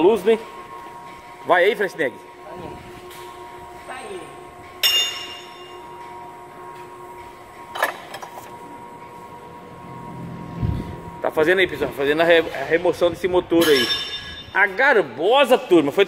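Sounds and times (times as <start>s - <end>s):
steady background hum: 0.0s - 16.0s.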